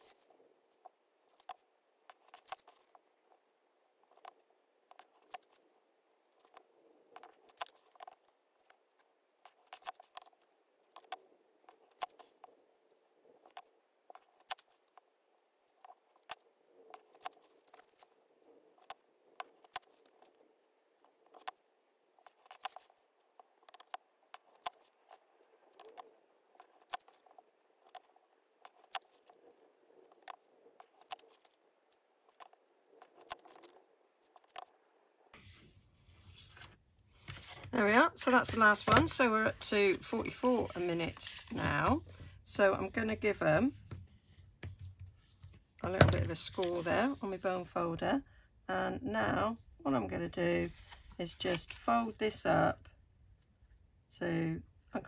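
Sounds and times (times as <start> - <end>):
paper rustling: 22.2 - 28.1, 28.7 - 31.6, 35.4 - 42.1, 50.6 - 51.9.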